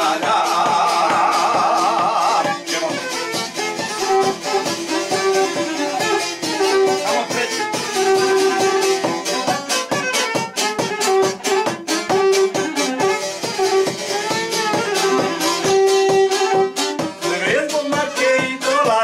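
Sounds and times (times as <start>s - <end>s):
man singing: 0.0s - 3.3s, 17.2s - 19.0s
plucked string instrument strumming: 0.0s - 19.0s
violin melody: 0.0s - 19.0s.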